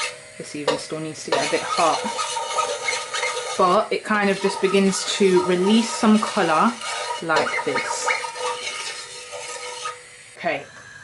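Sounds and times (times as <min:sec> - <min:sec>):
wooden spoon scraping a pot: 0:00.0 - 0:10.1
oil sizzling: 0:00.0 - 0:11.0.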